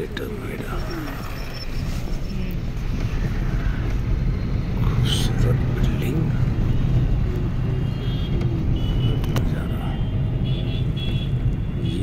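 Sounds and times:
road and engine rumble: 0:00.0 - 0:12.0.

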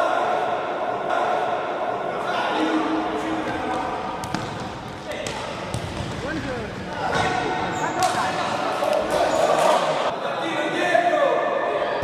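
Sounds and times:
ball bouncing on hard court: 0:03.4 - 0:08.3.

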